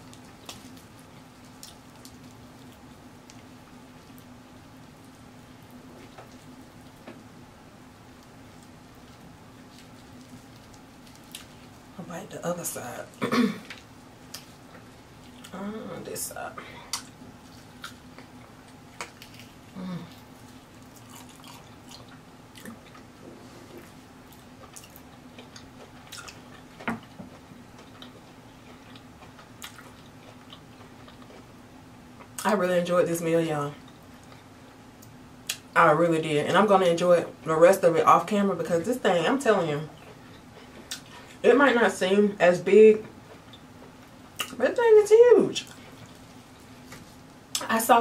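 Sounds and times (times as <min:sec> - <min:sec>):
close-up chewing: 0:00.0 - 0:04.4, 0:08.2 - 0:11.8, 0:16.9 - 0:31.6
steady low hum: 0:00.0 - 0:48.0.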